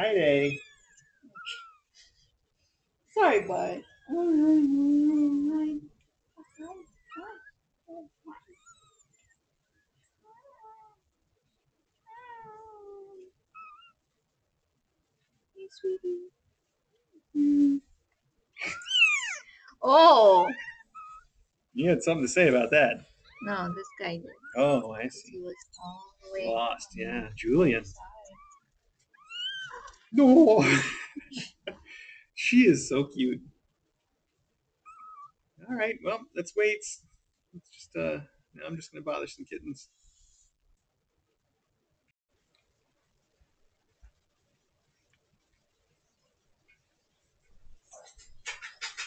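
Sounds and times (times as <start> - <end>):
kittens mewing: 1.4 - 1.9, 18.6 - 21.2, 22.1 - 28.6, 34.9 - 35.3
cat meowing: 18.7 - 19.4, 29.2 - 29.9, 34.9 - 35.3.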